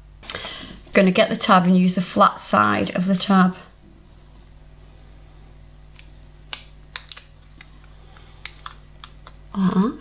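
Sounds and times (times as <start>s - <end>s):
steady low hum: 0.0s - 10.0s
paper clicks and crinkles: 6.0s - 9.4s.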